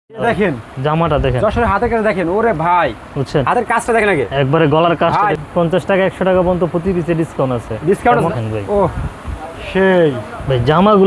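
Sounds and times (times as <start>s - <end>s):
man speaking: 0.1s - 11.0s.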